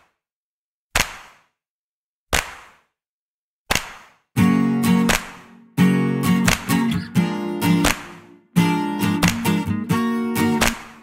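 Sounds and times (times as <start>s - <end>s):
sharp percussive hits: 5.0s - 5.5s.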